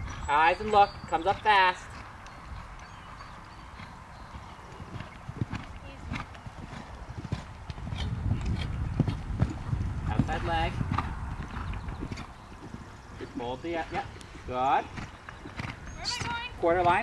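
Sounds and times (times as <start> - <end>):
horse hoofbeats on sand: 0.6 - 17.0.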